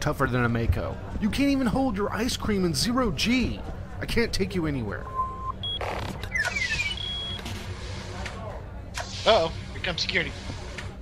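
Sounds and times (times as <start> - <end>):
electronic beeps and tones: 5.1 - 7.5.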